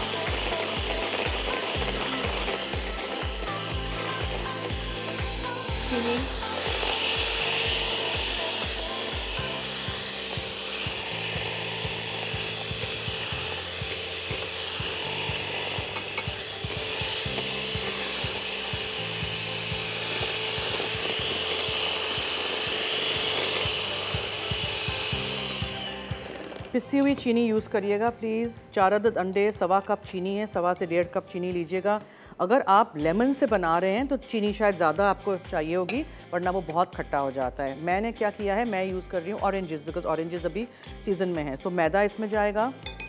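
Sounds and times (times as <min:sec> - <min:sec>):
electric hand mixer whisking: 0:00.0 - 0:28.2.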